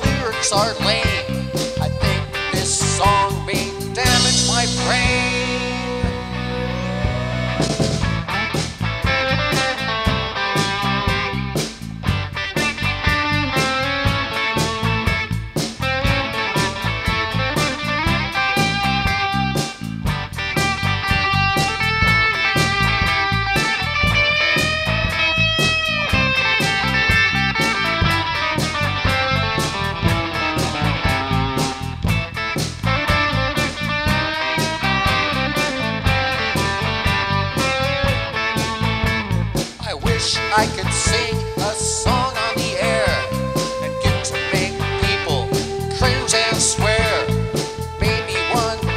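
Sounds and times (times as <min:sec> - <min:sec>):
drums and bass: 0:00.0 - 0:48.9
electric guitar solo: 0:00.0 - 0:48.9.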